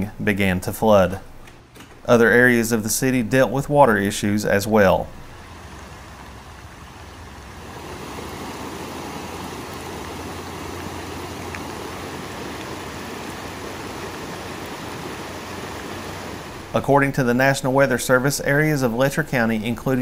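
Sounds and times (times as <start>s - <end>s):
floodwater rushing: 2.3s - 20.0s.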